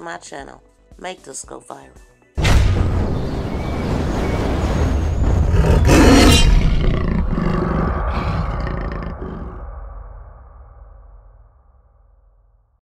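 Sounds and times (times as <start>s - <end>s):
big cat roaring: 5.4s - 9.6s.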